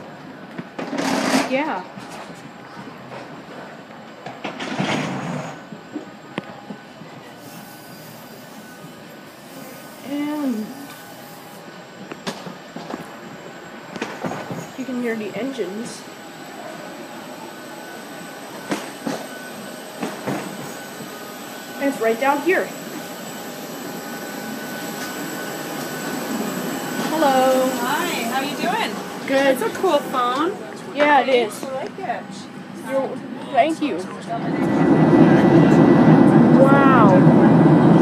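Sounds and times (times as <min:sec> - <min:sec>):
aircraft engines humming and whining: 0:00.0 - 0:38.0
thin high tone: 0:20.5 - 0:30.7.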